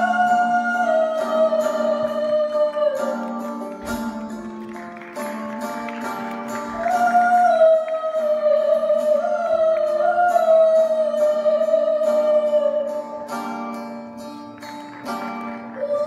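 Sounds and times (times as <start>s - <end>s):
person singing long notes: 0.0s - 4.0s, 6.5s - 13.4s, 15.7s - 16.0s
plucked string accompaniment: 0.0s - 16.0s.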